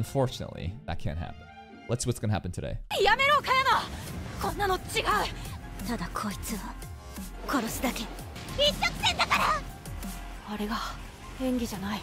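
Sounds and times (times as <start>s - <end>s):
background music: 0.0s - 12.0s
girl's high-pitched voice: 8.6s - 9.6s.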